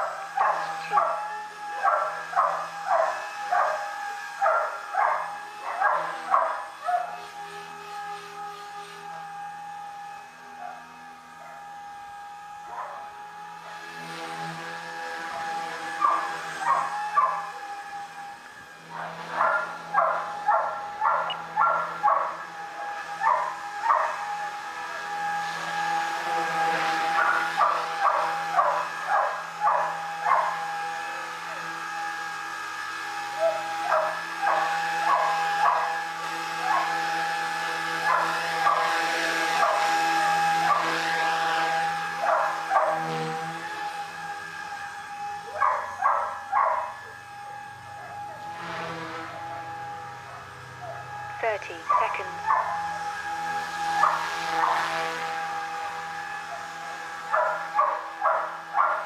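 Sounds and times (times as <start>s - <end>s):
rc helicopter motor whine: 0.0s - 59.0s
dog barking: 0.4s - 1.2s, 1.8s - 3.8s, 4.4s - 7.2s, 12.7s - 13.0s, 16.0s - 17.5s, 19.0s - 22.4s, 23.2s - 24.2s, 27.2s - 30.6s, 33.4s - 36.0s, 36.7s - 36.9s, 38.1s - 39.0s, 39.6s - 39.9s, 42.2s - 43.0s, 45.6s - 47.0s, 51.8s - 52.8s, 54.0s - 54.9s, 57.3s - 59.0s.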